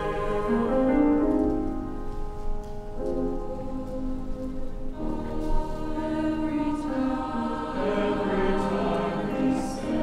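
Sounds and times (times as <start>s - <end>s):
choir singing sustained chord: 0.0s - 1.9s, 3.4s - 10.0s.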